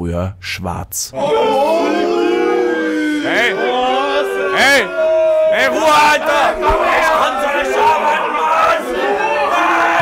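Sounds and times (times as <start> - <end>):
men shouting and hollering: 1.2 - 10.0.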